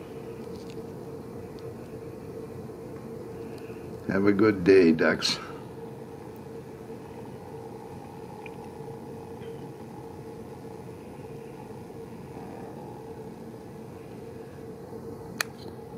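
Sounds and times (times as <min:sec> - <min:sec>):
faint constant tone: 0:00.0 - 0:15.9
low mechanical hum: 0:00.0 - 0:15.9.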